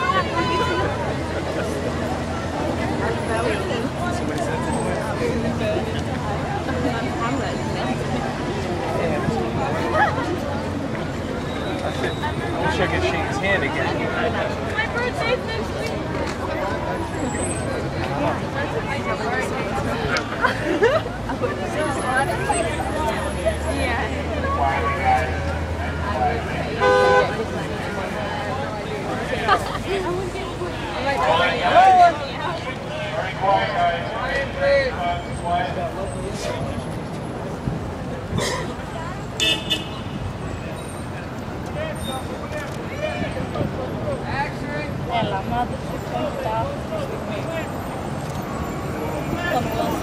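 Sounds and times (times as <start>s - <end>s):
crowd talking: 0.0s - 50.0s
street traffic: 0.0s - 50.0s
vehicle horn double toot: 26.8s - 27.3s, 39.4s - 40.2s.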